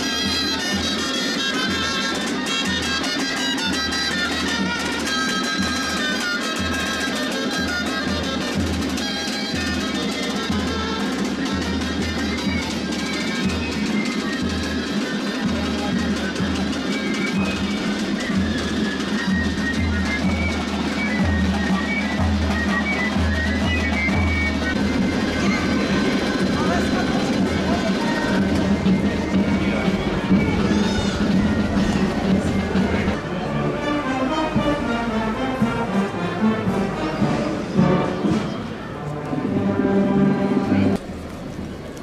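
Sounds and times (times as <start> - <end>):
crowd voices: 0.0 - 42.0
high-pitched melody: 0.1 - 38.5.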